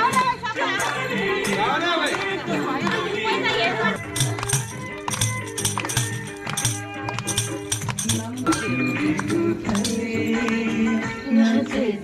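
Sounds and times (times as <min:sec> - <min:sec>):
hand clapping: 0:00.1 - 0:10.7
frame drum with jingles: 0:03.9 - 0:10.1.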